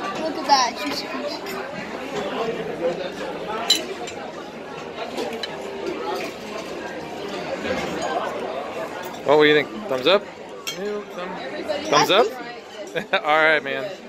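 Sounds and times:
diners chattering: 0.0s - 14.0s
cutlery clinking on plates: 3.6s - 8.4s, 9.0s - 11.3s.

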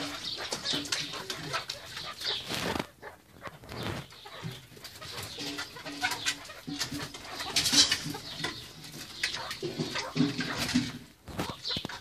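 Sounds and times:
quick scratchy sounds: 0.0s - 8.4s
partridges calling: 0.0s - 12.0s.

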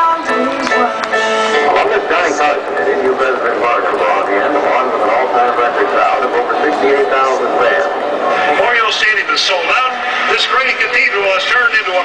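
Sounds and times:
man narrating over public address: 1.5s - 12.0s.

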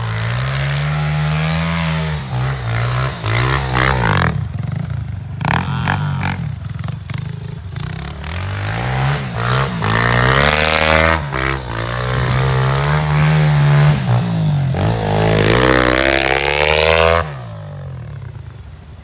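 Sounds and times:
small motorbike engine revving: 0.0s - 18.5s.

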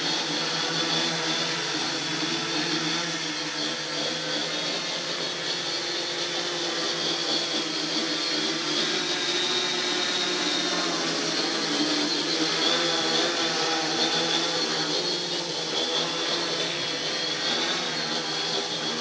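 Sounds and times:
quadcopter motors buzzing: 0.0s - 19.0s.

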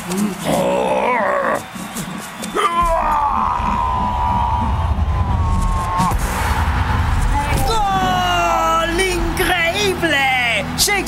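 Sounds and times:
steady deep rumble: 3.1s - 9.7s.

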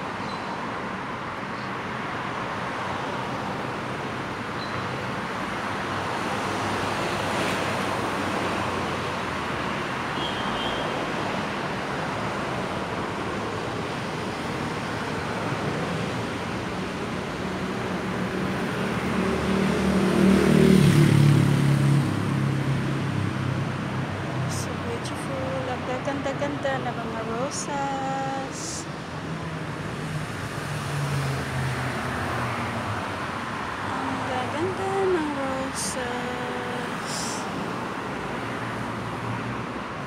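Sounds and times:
city street traffic: 0.0s - 40.0s.

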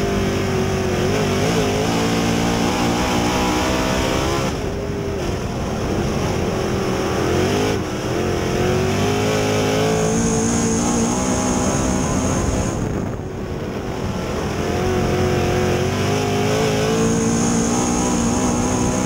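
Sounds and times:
race car engine running hard: 0.0s - 19.0s.

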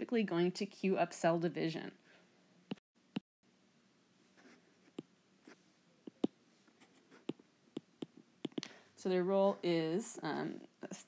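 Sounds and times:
stylus tapping and scratching tablet: 4.4s - 8.7s.

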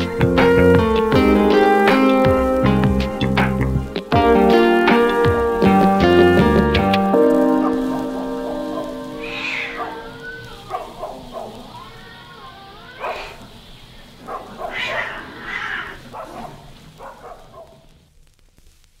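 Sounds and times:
music: 0.0s - 10.4s
dogs barking: 7.4s - 17.9s
cats meowing: 7.7s - 16.4s.

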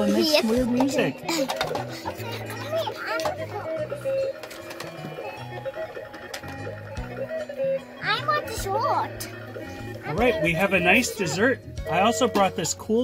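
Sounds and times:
electronic toy melody: 0.4s - 13.0s.

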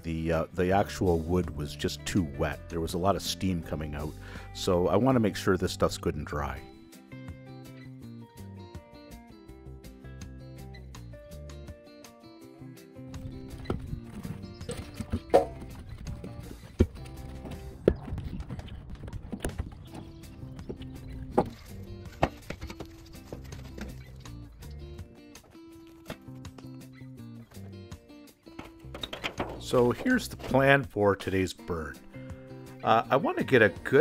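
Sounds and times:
background music: 0.0s - 34.0s
wooden branches knocking: 28.6s - 30.6s.

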